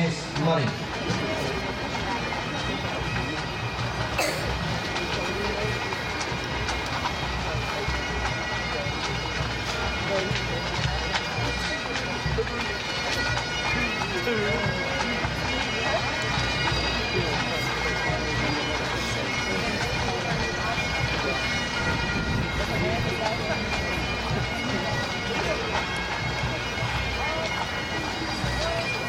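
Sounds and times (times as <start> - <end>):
bagpipes playing: 0.0 - 29.0.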